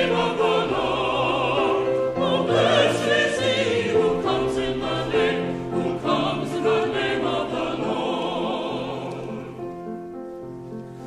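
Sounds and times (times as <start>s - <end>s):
mixed choir singing: 0.0s - 10.0s.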